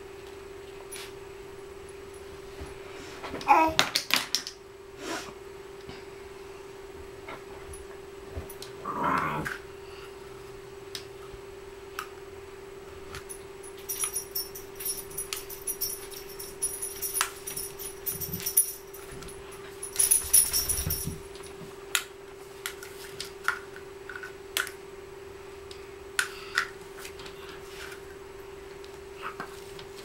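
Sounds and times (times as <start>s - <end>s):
jingling toy rattle: 13.8s - 21.3s.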